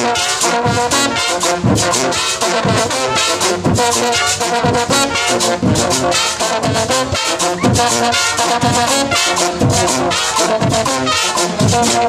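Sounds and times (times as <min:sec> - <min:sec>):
bass drum beats: 0:00.0 - 0:12.0
brass marching band playing: 0:00.0 - 0:12.0.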